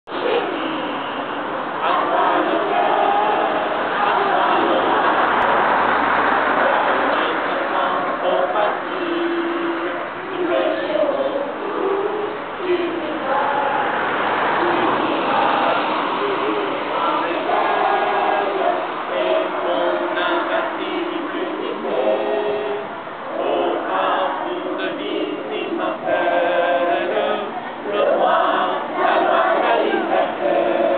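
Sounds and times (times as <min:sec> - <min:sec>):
children singing together: 0:00.1 - 0:30.9.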